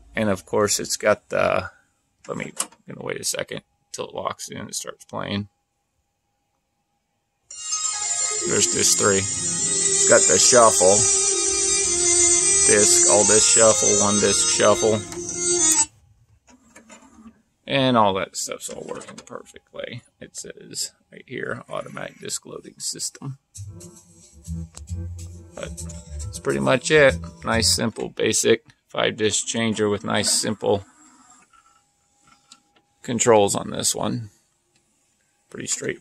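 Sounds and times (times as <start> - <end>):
music from cd player: 7.7 - 15.9, 23.5 - 27.8.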